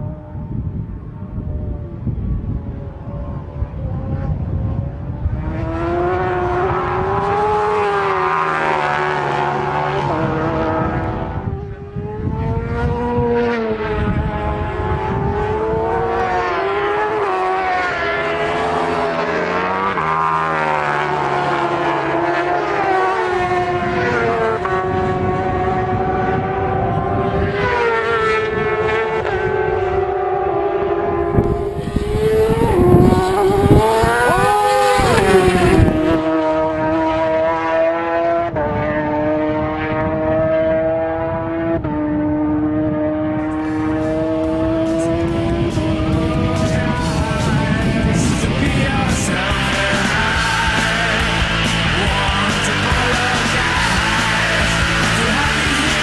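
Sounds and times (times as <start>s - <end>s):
motorcycle passing close: 0.0s - 56.0s
racing motorcycle engines: 0.0s - 56.0s
engine note stepping down at upshifts: 14.0s - 38.6s.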